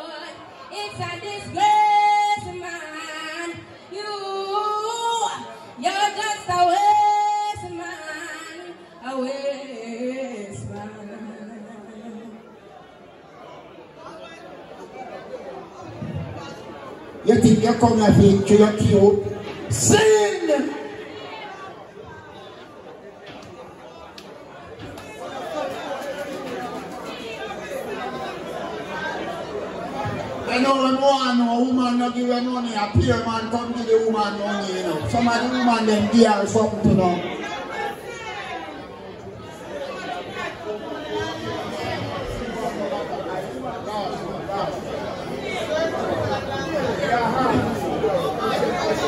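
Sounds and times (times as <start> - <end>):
people talking and chattering: 0.0 - 49.0
man speaking over microphone: 17.2 - 21.0, 30.4 - 37.4.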